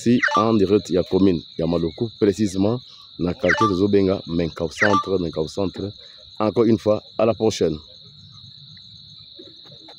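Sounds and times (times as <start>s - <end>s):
man speaking: 0.0s - 7.9s
high-pitched insect trill: 0.0s - 9.9s.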